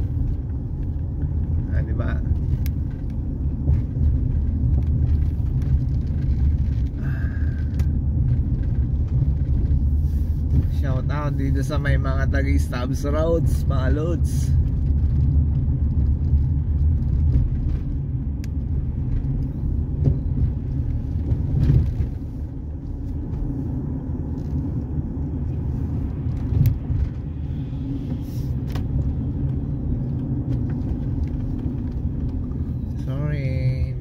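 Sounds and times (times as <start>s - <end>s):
car engine and tyre noise: 0.0s - 34.0s.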